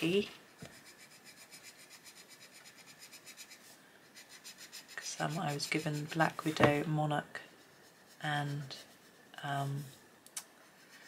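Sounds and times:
pencil scratching on paper: 0.0 - 9.9, 10.6 - 11.0.

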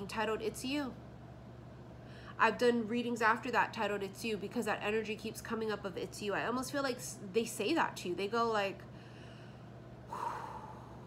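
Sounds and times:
woman breathing in: 8.9 - 11.0.

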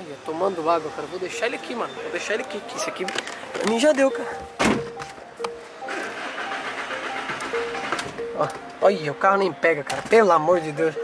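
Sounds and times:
background music: 0.0 - 11.0
car starter cranking engine: 5.8 - 8.6.

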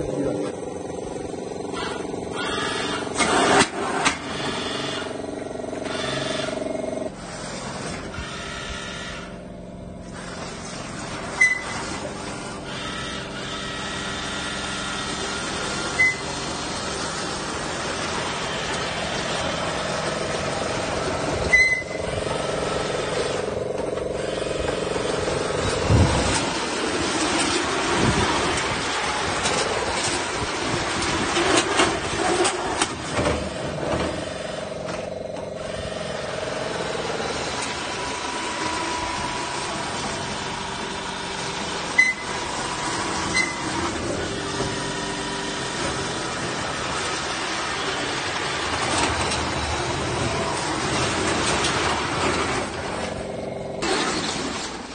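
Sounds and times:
motor mechanical drone: 0.0 - 54.9.

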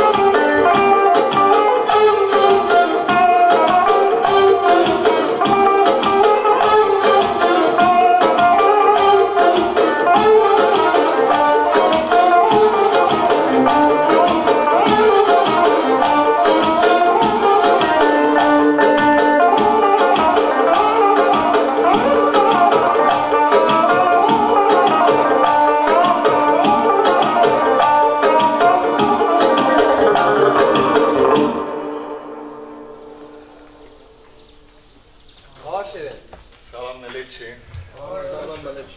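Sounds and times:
electric guitar fast melodic runs: 0.0 - 34.4
keyboard accompaniment: 0.0 - 36.6.

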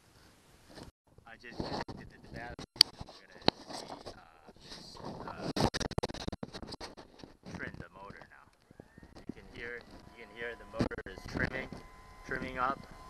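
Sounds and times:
rustling and scraping handling: 0.0 - 13.0.

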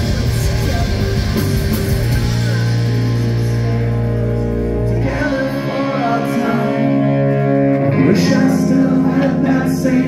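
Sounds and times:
electric bass and guitar chord: 0.0 - 10.0.

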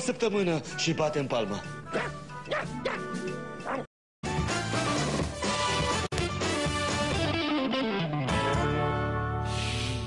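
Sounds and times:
background music: 0.0 - 10.0
cartoon dog barking and yipping: 1.9 - 3.9.

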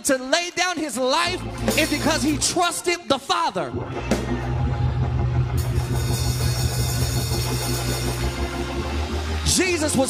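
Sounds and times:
person preaching: 0.0 - 3.8, 9.4 - 10.0
live church band music: 0.0 - 10.0.

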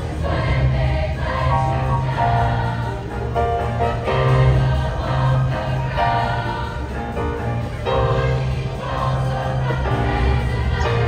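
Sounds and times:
choir singing in harmony: 0.0 - 11.0
instrumental accompaniment: 0.0 - 11.0.

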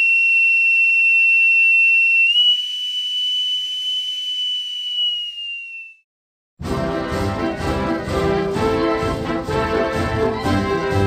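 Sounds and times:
bosun's pipe whistled note: 0.0 - 6.0.

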